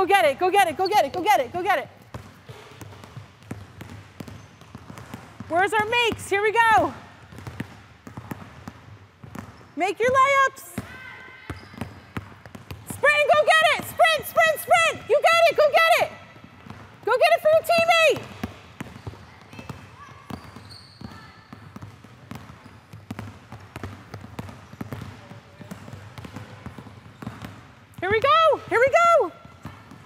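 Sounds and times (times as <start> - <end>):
basketballs bouncing on wooden floor: 0.0 - 30.0.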